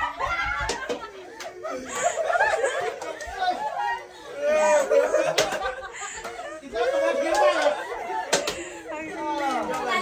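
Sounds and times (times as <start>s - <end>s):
group chatter: 0.0s - 10.0s.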